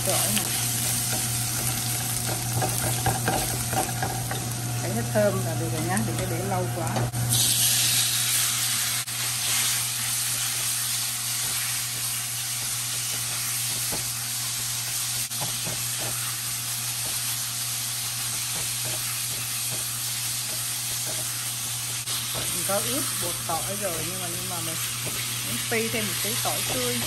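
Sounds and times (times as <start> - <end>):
meat sizzling in a wok: 0.0 - 27.0.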